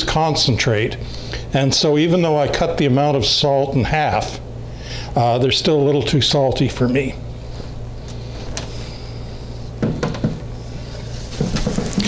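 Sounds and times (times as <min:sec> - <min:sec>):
steady low hum: 0:00.0 - 0:12.0
knocks and clicks of trays: 0:09.8 - 0:10.4.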